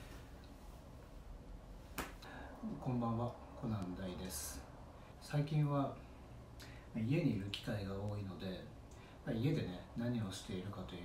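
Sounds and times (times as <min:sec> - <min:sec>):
hand snap: 0:01.9 - 0:02.3
man speaking: 0:02.6 - 0:06.0, 0:06.9 - 0:11.0.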